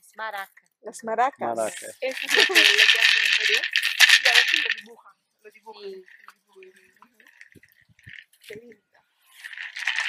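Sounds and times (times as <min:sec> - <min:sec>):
maraca shaking: 0:01.6 - 0:04.9, 0:05.8 - 0:08.4, 0:09.4 - 0:10.0.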